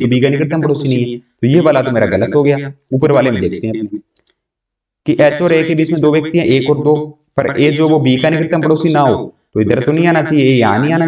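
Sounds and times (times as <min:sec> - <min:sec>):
man speaking: 0:00.0 - 0:04.0, 0:05.1 - 0:11.0.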